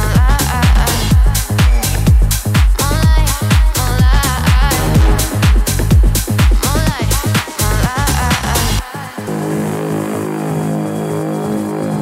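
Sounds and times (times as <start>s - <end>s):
droning low synth chord: 4.7s - 6.4s.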